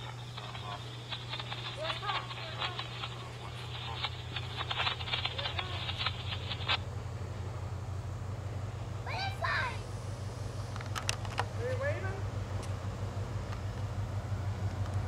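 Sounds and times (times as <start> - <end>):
faint voices: 0.0 - 6.8
sharp clicks: 0.0 - 6.8
diesel locomotive engine drone: 0.0 - 15.0.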